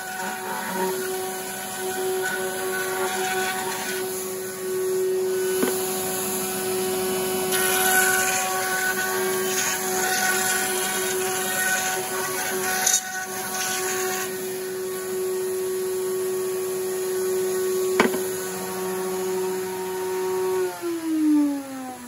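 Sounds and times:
router cutting hiss: 0:00.0 - 0:22.0
table router high whine: 0:00.0 - 0:22.0.

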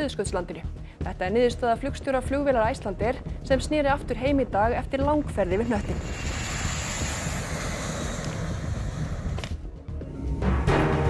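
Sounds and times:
wind on microphone: 0:03.3 - 0:09.7
jet engines at takeoff: 0:05.4 - 0:09.6.

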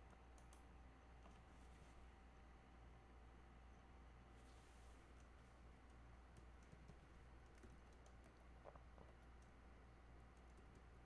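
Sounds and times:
computer keyboard typing: 0:06.3 - 0:08.4, 0:10.3 - 0:11.0.

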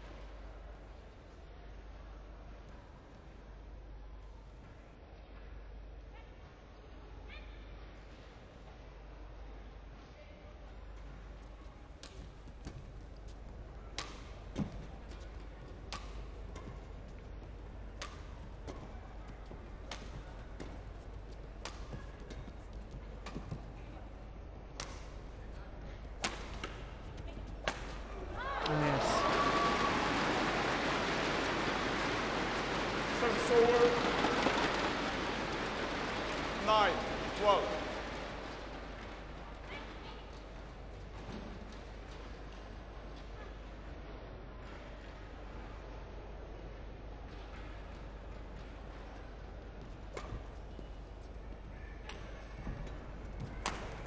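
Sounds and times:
racket hitting shuttlecock: 0:13.9 - 0:14.8, 0:15.8 - 0:16.8, 0:18.0 - 0:18.8, 0:26.2 - 0:27.0, 0:27.6 - 0:28.8, 0:53.6 - 0:54.0
crowd shouts: 0:28.3 - 0:38.7
crowd cheering and applauding: 0:28.3 - 0:39.3.

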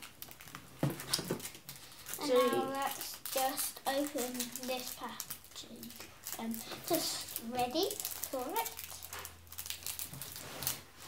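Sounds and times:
faint crackles: 0:00.0 - 0:11.0
packet rustling and crinkling: 0:00.0 - 0:11.0.

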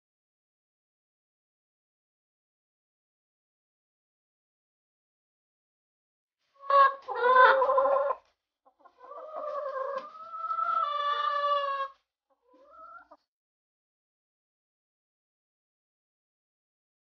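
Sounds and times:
chickens calling: 0:06.6 - 0:13.2.

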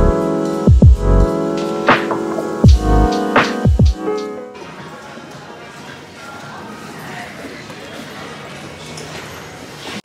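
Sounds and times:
faint music: 0:00.0 - 0:10.0.

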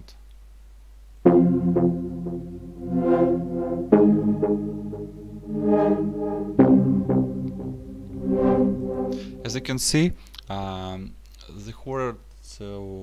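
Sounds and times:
synthesizer chords with filter sweeps: 0:01.2 - 0:09.9.

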